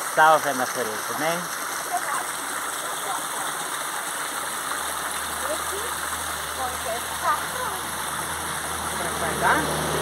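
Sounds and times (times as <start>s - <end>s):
stream water flowing: 0.0s - 10.0s.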